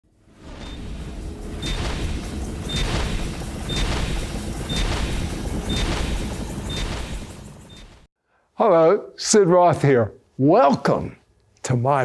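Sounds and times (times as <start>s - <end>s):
sharp hits: 0.5s - 8.1s.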